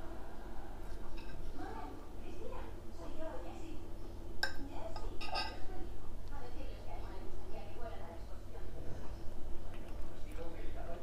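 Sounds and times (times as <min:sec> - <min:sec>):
fork clinking on ceramic plate: 0:05.2 - 0:05.6.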